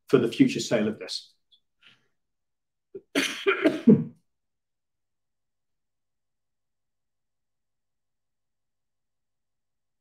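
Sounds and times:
man coughing: 0:03.0 - 0:04.2.

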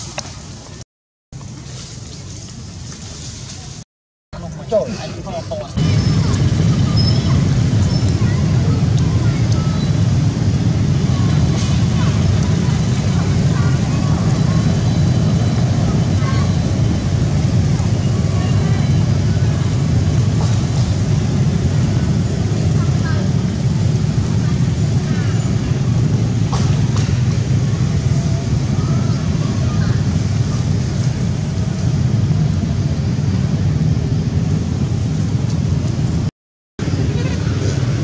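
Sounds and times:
low outdoor rumble: 0:04.4 - 0:38.0.

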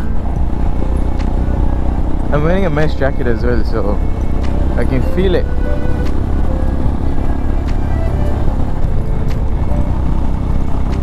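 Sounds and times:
motorcycle engine rumbling: 0:00.0 - 0:11.0.

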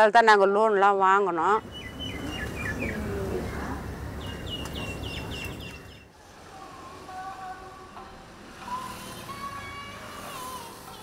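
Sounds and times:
small birds chirping: 0:01.6 - 0:06.1
road traffic: 0:01.6 - 0:11.0.

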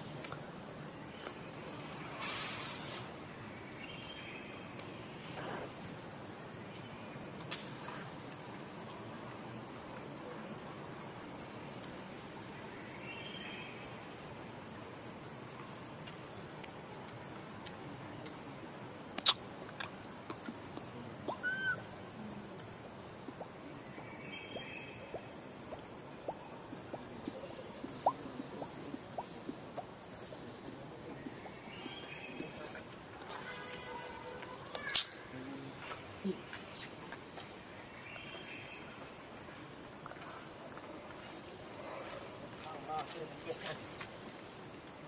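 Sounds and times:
soft hiss: 0:00.0 - 0:45.0
faint distant calls: 0:20.4 - 0:37.0.

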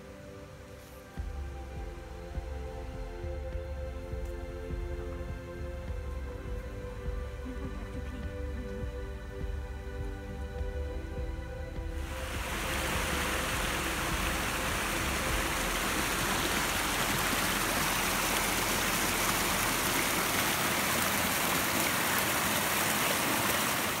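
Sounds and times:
stream running over rocks: 0:11.9 - 0:24.0.

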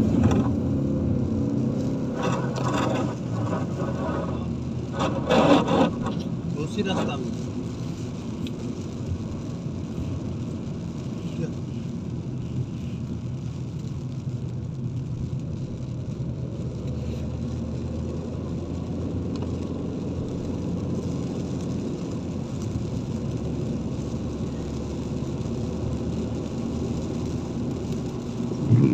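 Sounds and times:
car engine rumble from cabin: 0:00.0 - 0:28.9
tyres on wet road: 0:00.0 - 0:28.9.

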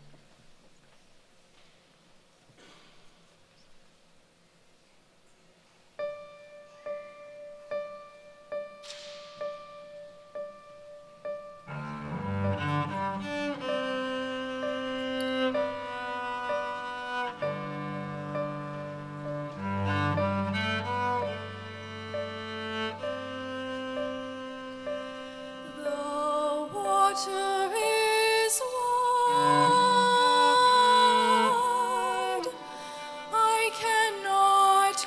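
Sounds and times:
piano notes and chords: 0:06.0 - 0:34.8
cello playing low bowed notes: 0:09.4 - 0:34.9.

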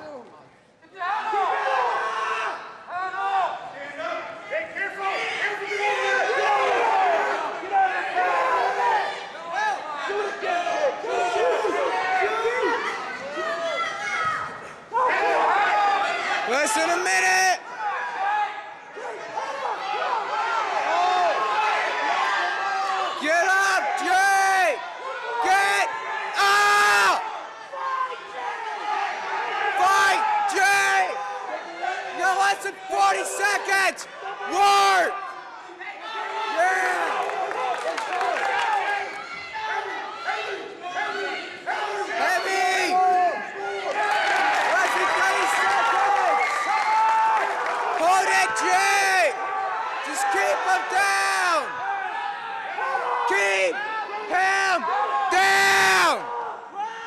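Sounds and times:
crowd shouting in a gymnasium: 0:00.0 - 0:57.0.

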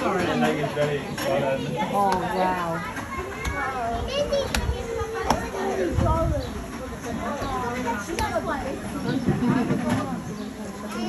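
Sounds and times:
children talking: 0:00.0 - 0:11.0
people talking: 0:00.0 - 0:11.0.

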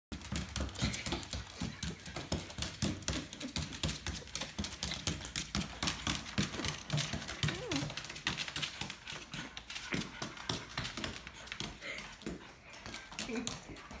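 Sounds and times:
dog claws clicking on wood floor: 0:00.1 - 0:14.0.

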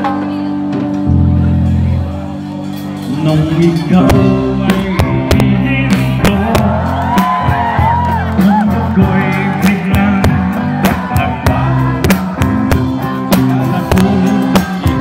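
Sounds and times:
bass guitar: 0:00.0 - 0:15.0
electric guitar: 0:00.0 - 0:15.0
person singing: 0:01.8 - 0:15.0
drum beat: 0:03.0 - 0:15.0.

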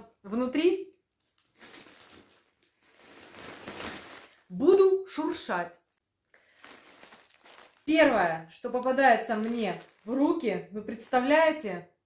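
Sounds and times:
plastic bag rustling and crinkling: 0:01.1 - 0:10.6.

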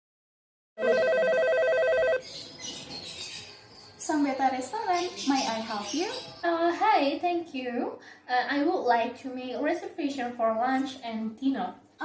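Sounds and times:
telephone ringing: 0:00.8 - 0:02.3.

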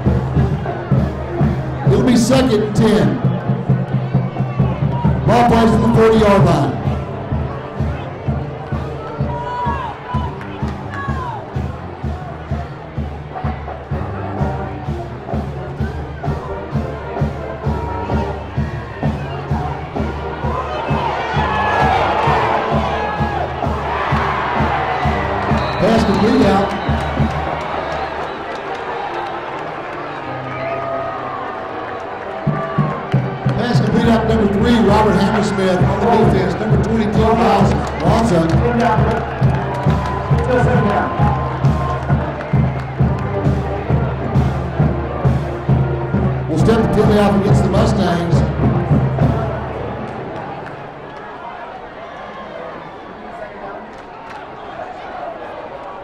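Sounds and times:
drums beating: 0:00.0 - 0:28.6, 0:32.4 - 0:50.7
stadium crowd cheering: 0:00.0 - 0:56.0.

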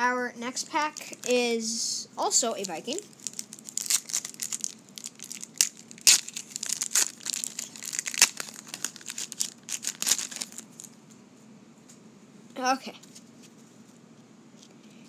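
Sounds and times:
plastic wrapper crinkling: 0:00.6 - 0:01.4, 0:02.4 - 0:11.0.

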